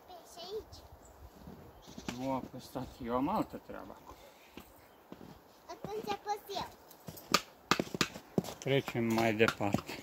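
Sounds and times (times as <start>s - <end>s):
sharp knocks: 7.3s - 8.2s.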